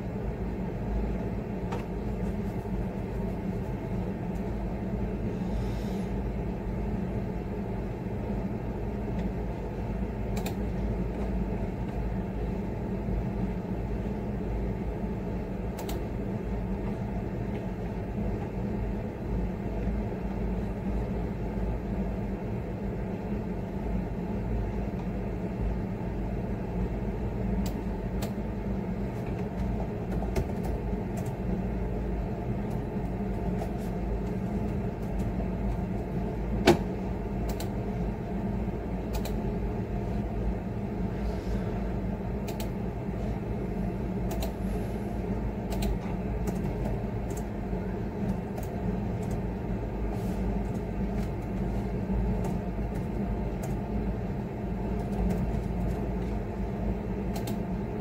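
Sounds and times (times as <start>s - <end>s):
low background hum: 0.0s - 58.0s
keyboard clicks: 37.5s - 37.7s, 39.1s - 39.4s, 42.4s - 42.7s, 44.3s - 44.6s, 45.7s - 47.5s, 57.3s - 57.6s.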